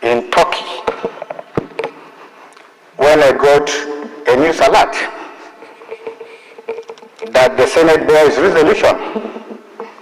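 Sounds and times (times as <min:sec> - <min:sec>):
faint room hum: 0:00.0 - 0:10.0
handling knocks and clicks: 0:06.0 - 0:07.4.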